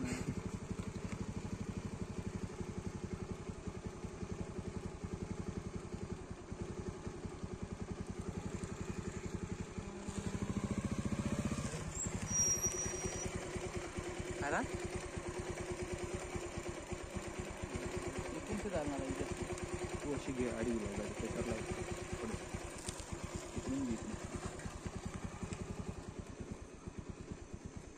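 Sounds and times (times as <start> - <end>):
vehicle engine idling: 0.0 - 27.9.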